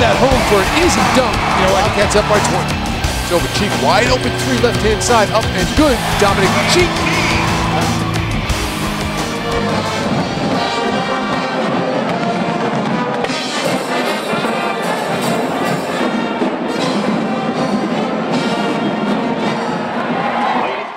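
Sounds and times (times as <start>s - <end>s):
brass band playing: 0.0s - 19.4s.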